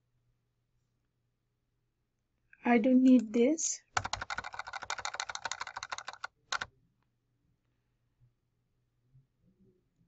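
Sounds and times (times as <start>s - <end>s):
computer keyboard typing: 3.9s - 6.7s.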